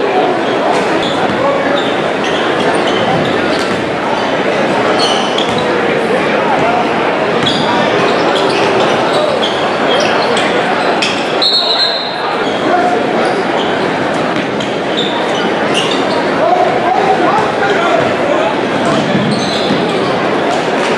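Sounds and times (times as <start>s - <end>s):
spectators shouting in a hall: 0.0s - 20.9s
sneaker squeaks on hardwood: 0.7s - 3.9s, 4.9s - 5.7s, 7.4s - 16.3s, 18.9s - 20.9s
basketball bouncing: 3.0s - 4.0s, 5.4s - 5.7s.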